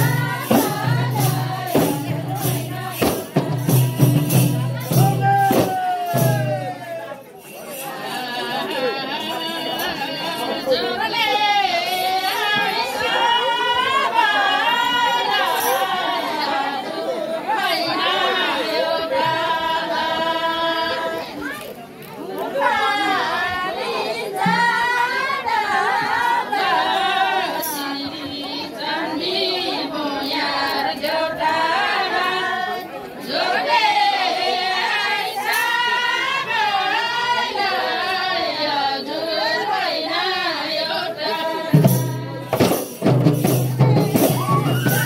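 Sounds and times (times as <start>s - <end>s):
group singing folk song: 0.0s - 45.0s.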